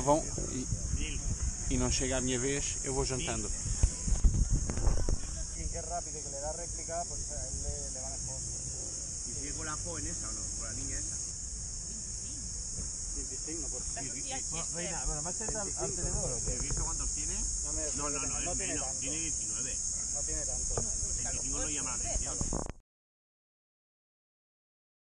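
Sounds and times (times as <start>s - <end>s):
insects chirping: 0.0s - 22.8s.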